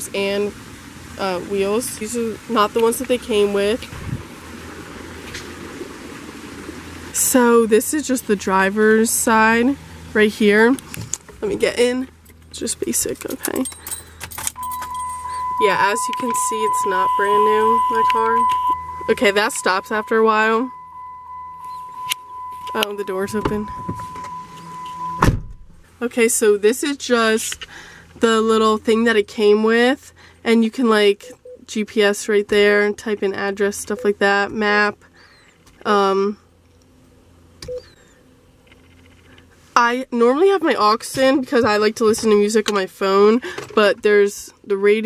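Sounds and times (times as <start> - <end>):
wind on microphone: 3.8 - 7.0
high car warning tone: 14.6 - 26.2, 33.9 - 34.3
car door shutting thud: 25.0 - 25.8.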